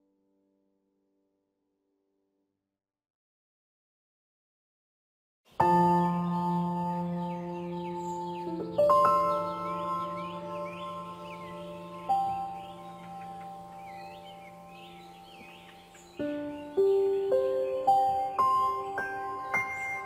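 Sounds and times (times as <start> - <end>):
birds chirping: 5.5 - 20.0
ringing chime-like music: 5.9 - 20.0.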